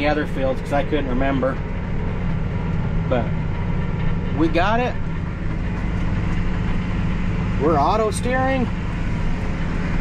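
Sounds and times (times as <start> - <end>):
tractor engine drone: 0.0 - 10.0.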